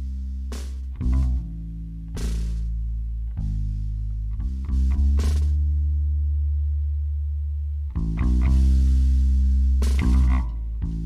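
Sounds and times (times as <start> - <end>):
low bass note: 0.0 - 11.0
new notes: 0.0 - 11.0.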